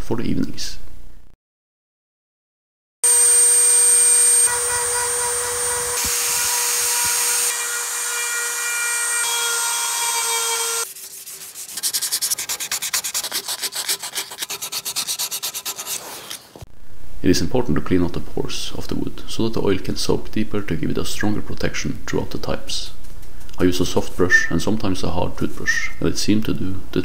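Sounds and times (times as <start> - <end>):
rotary tool grinding wood: 3.1 - 16.6
brush scrubbing wood: 10.8 - 16.5.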